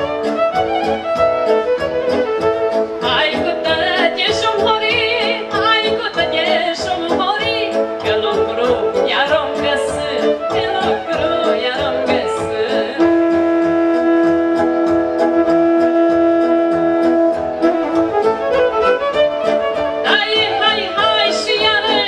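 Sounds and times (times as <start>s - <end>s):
folk band with fiddle: 0.0s - 22.0s
woman singing into a microphone: 3.0s - 13.7s, 20.0s - 22.0s.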